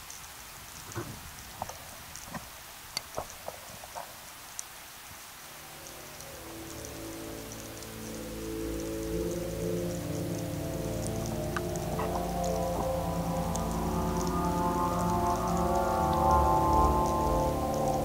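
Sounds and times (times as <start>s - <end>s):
sharp clicks and crackles: 0.0s - 4.8s, 5.8s - 18.0s
ambient music with held notes: 5.4s - 18.0s.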